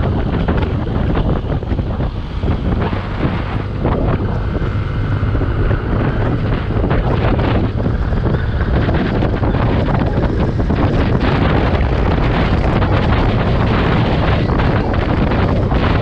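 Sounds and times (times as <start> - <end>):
motorcycle engine running: 0.0 - 16.0
wind noise on microphone: 0.0 - 16.0.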